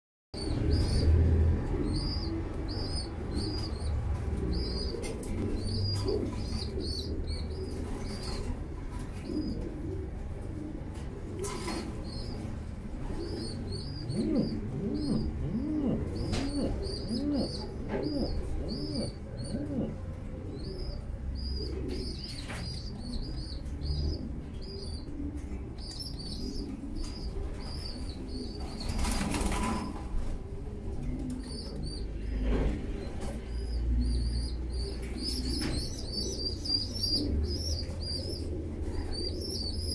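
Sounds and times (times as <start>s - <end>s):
pigeons chirping: 0.4s - 39.9s
wings fluttering: 28.6s - 30.4s.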